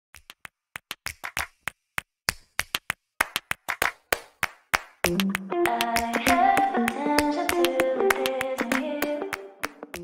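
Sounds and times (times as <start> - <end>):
sharp claps and clicks: 0.1 - 10.0.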